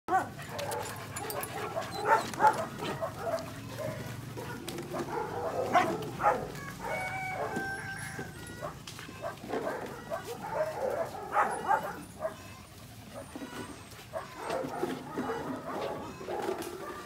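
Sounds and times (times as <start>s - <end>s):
puppies yipping and barking: 0.1s - 17.0s.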